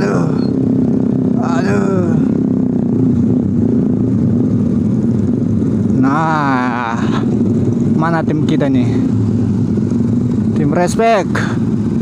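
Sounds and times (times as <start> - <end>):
motorcycle engine running: 0.0 - 12.0
other motorcycles: 0.0 - 12.0.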